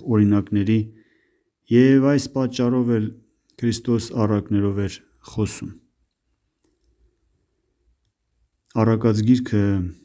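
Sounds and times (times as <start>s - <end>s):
man reading aloud: 0.0s - 6.0s, 8.6s - 10.0s.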